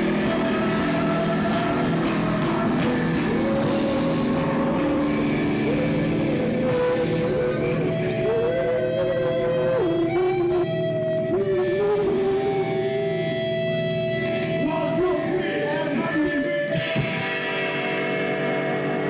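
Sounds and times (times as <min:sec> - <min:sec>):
live rock band playing: 0:00.0 - 0:19.0
sliding lead guitar notes: 0:00.0 - 0:19.0.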